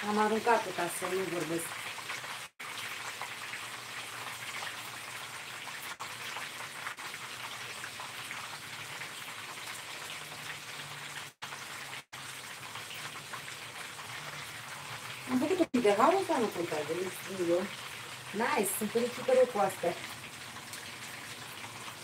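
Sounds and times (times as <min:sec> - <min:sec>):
food sizzling in a frying pan: 0:00.0 - 0:22.0.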